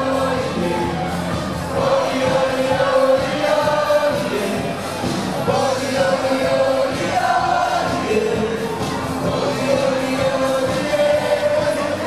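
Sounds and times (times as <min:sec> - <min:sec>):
crowd singing along: 0:00.0 - 0:12.0
party music: 0:00.0 - 0:12.0.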